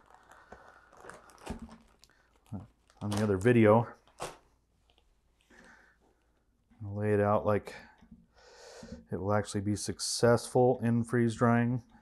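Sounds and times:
plastic bag crinkling: 0.0s - 5.1s.

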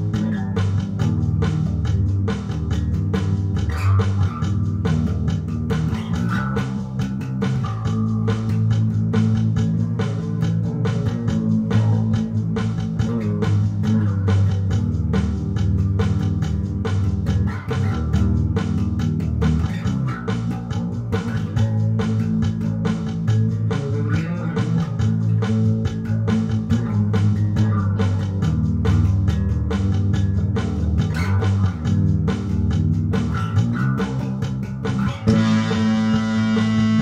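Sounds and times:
electric bass guitar rock line: 0.0s - 37.0s.

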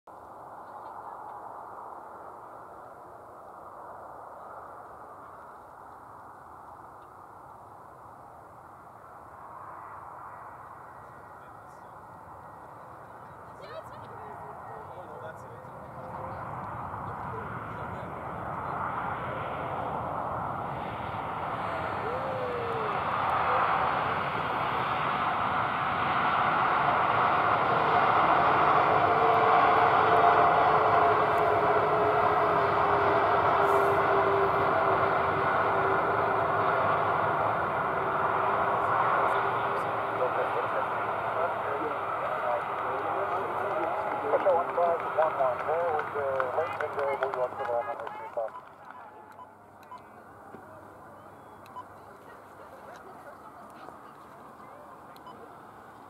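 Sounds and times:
jet engine roar: 0.1s - 48.8s.

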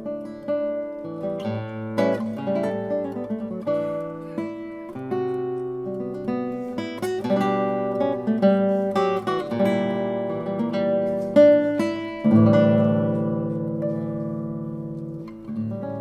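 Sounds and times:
fingerstyle classical guitar: 0.0s - 16.0s.

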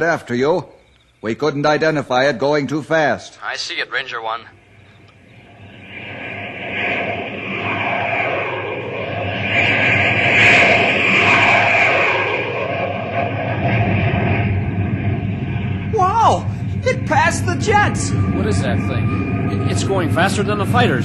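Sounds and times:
jet flyby: 3.4s - 21.0s.

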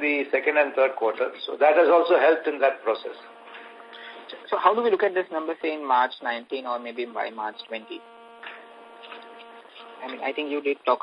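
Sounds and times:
electrical hum on phone line: 0.0s - 11.0s.

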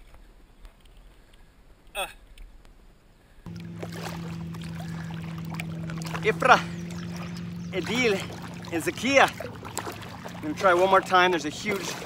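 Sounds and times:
steady low hum: 3.4s - 12.0s.

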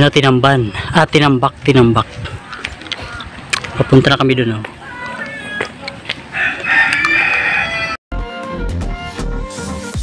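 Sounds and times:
rooster crowing: 4.8s - 8.0s
music: 8.1s - 10.0s.

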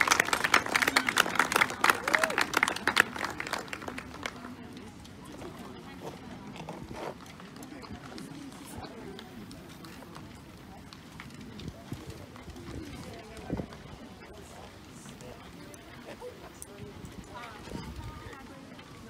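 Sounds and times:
murmur of voices: 0.0s - 19.0s.

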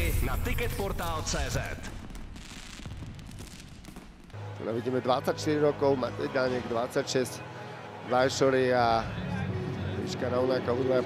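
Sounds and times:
fireworks crackling: 0.0s - 4.5s.

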